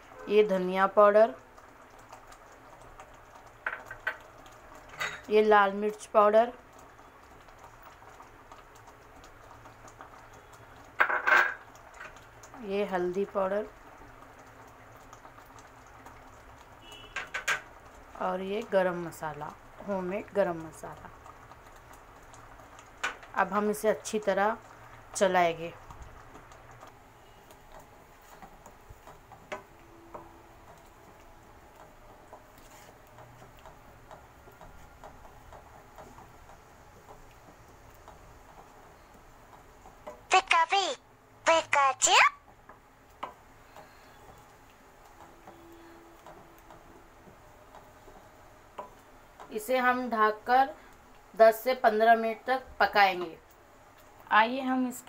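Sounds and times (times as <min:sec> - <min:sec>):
paste sizzling and bubbling in oil: 0:00.0 - 0:55.0
wooden spatula scraping a pan: 0:32.4 - 0:33.1.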